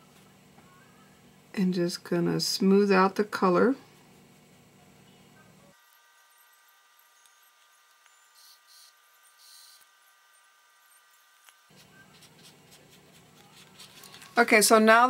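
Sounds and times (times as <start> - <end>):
brush swishing on paper: 11.7 - 14.4.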